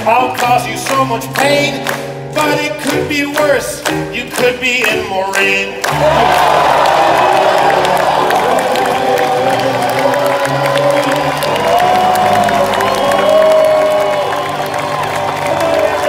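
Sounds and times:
piano chords: 0.0s - 16.0s
audience cheering and applauding: 4.8s - 16.0s.

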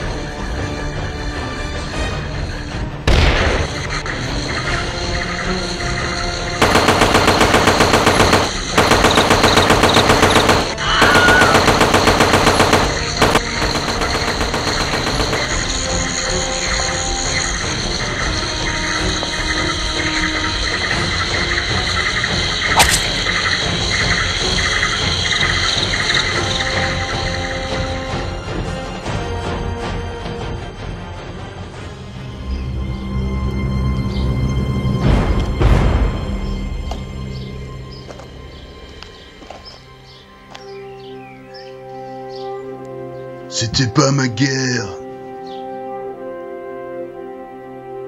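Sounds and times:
dramatic background music: 0.0s - 48.0s
automatic gunfire: 6.6s - 16.0s.

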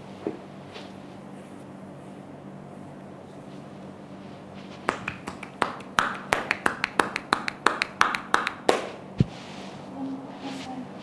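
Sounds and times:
hands slapping a bare back: 4.8s - 9.3s.

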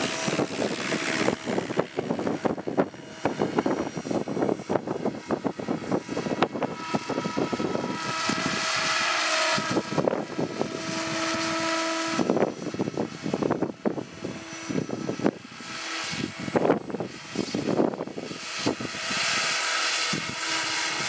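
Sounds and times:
rc helicopter motor whine: 0.0s - 21.0s
wind buffeting microphone: 0.0s - 21.0s.

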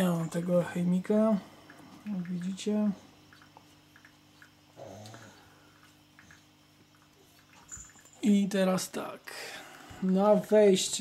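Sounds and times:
faint electric pump hum: 0.0s - 11.0s.

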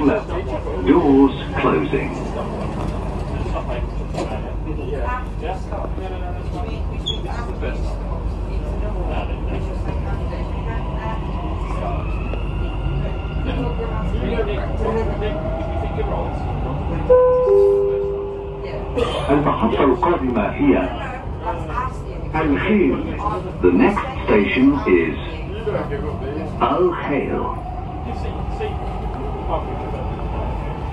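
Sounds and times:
train rumble: 0.0s - 30.9s
two-note falling chime: 17.2s - 18.6s.

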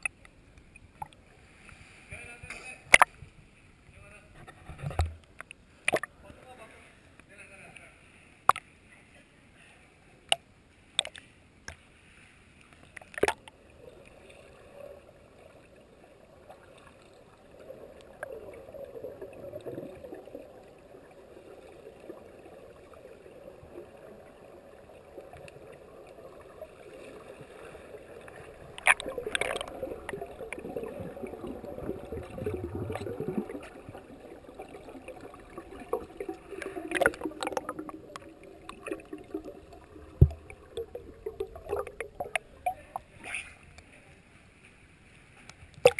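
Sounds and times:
muffled underwater gurgling: 17.4s - 43.4s.

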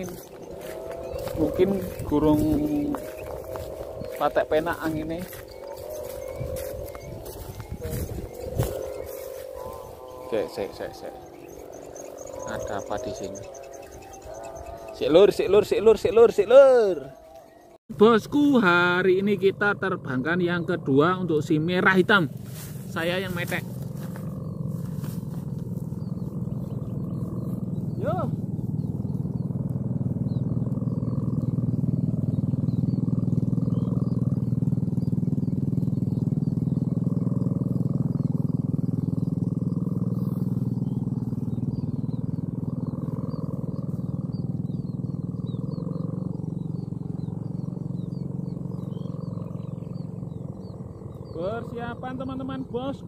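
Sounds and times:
kite hummer droning: 0.0s - 53.0s.

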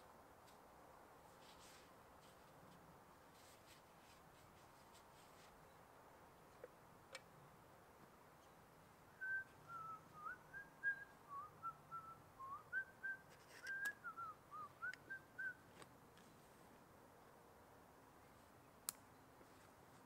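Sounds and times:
person whistling a tune: 9.2s - 15.6s.

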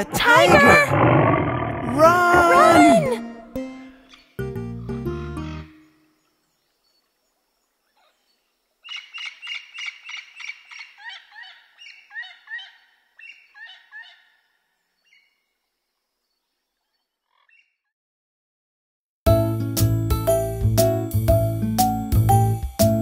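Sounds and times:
bird chirping: 5.4s - 17.8s.

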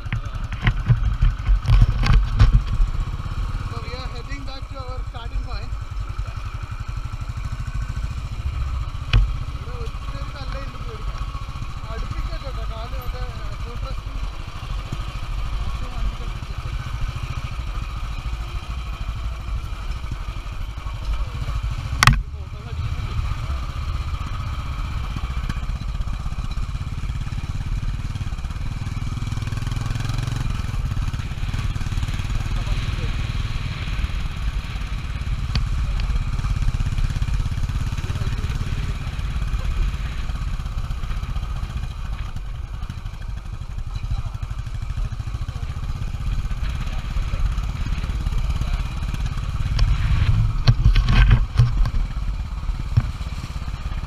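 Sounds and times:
motorcycle engine thumping: 0.0s - 4.5s, 5.7s - 18.6s, 19.4s - 54.0s.

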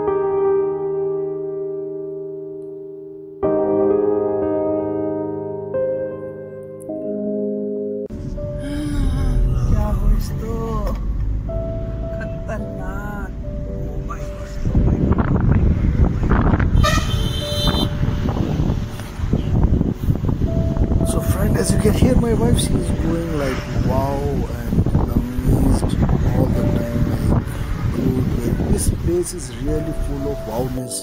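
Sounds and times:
solo piano music: 0.0s - 31.0s
car engine and road noise: 8.1s - 31.0s
wind buffeting microphone: 14.1s - 30.3s
vehicle horn toots: 16.6s - 18.4s.

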